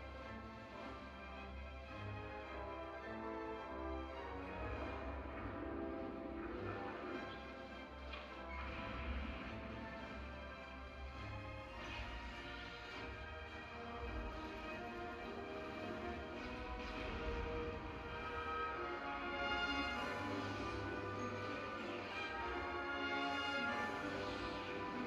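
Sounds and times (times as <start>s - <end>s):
symphony orchestra playing: 0.0s - 25.0s.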